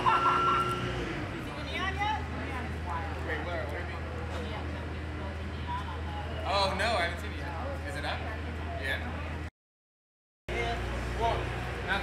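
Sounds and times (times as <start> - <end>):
held tone: 0.0 - 1.1
voices calling out: 0.0 - 2.4.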